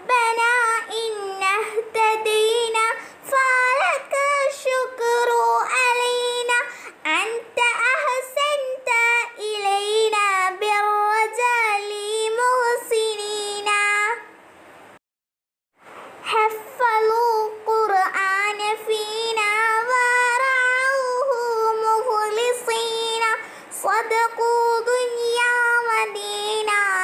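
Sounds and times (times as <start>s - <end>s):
child singing: 0.0s - 14.3s, 16.2s - 27.0s
child breathing: 3.0s - 3.2s, 6.7s - 7.0s, 23.4s - 23.7s.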